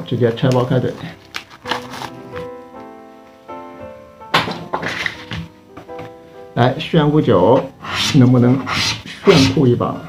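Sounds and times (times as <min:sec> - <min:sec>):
soft sustained chords music: 0:00.0 - 0:04.3, 0:05.2 - 0:07.9
plastic wrap rustling: 0:00.1 - 0:03.3
book set down thunk: 0:01.4 - 0:02.5, 0:04.3 - 0:06.2.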